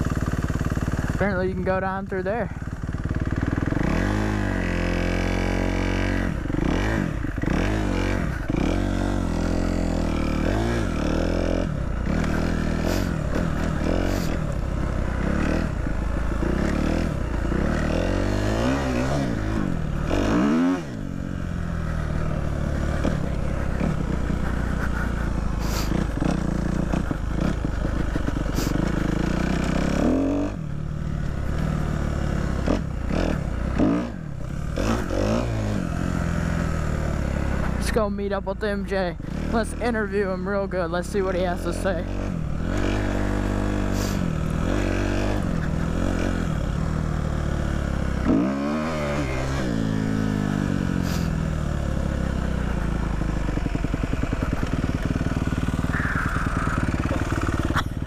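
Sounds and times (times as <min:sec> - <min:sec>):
dirt bike engine revving: 0:00.0 - 0:58.0
bike rattling and knocking: 0:22.2 - 0:30.0, 0:52.2 - 0:55.8.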